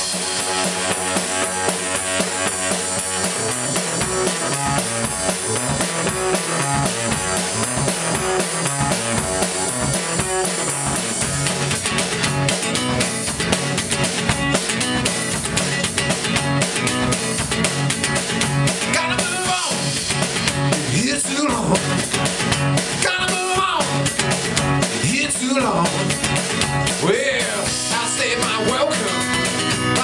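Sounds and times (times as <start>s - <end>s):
drum kit playing: 0.0s - 30.0s
acoustic guitar: 8.8s - 30.0s.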